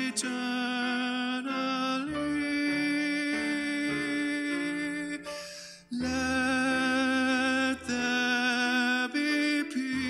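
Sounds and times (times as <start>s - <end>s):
slow hymn music: 0.0s - 10.0s.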